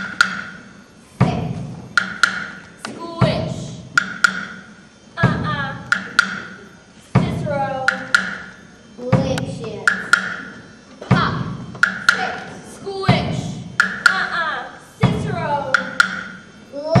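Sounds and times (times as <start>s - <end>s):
sharp woodblock-like clicks: 0.0s - 0.6s, 2.0s - 2.7s, 4.0s - 4.6s, 5.8s - 6.5s, 7.8s - 8.4s, 9.3s - 10.5s, 11.8s - 12.3s, 15.7s - 16.4s.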